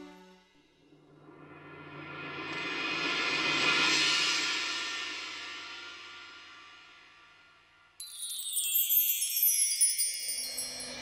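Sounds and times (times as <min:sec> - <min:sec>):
wind chimes ringing: 0:08.0 - 0:11.0.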